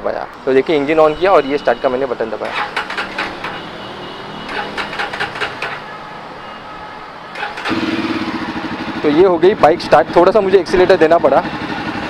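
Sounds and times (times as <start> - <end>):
electric starter: 2.4 - 3.7, 4.5 - 5.8, 7.4 - 8.2
motorcycle engine idling: 7.4 - 12.0.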